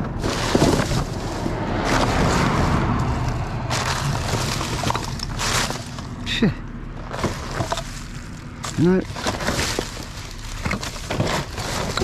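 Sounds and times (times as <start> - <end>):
plastic and cardboard rustling: 0.0 - 12.0
clicks and knocks of items: 7.1 - 12.0.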